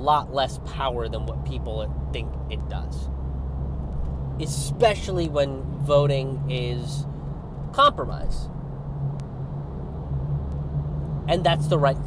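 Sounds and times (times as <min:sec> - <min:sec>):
car engine hum: 0:00.0 - 0:12.0
road rumble: 0:00.0 - 0:12.0.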